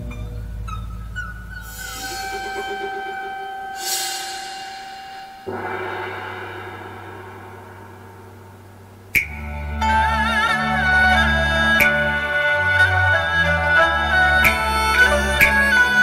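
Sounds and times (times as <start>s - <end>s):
ringing metal percussion: 0.0s - 11.0s
large gong struck: 1.7s - 9.2s
metal crash: 1.7s - 9.2s.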